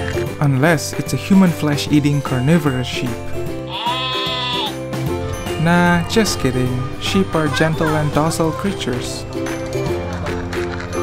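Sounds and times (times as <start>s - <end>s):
background music: 0.0s - 11.0s
sheep bleat: 3.7s - 4.8s.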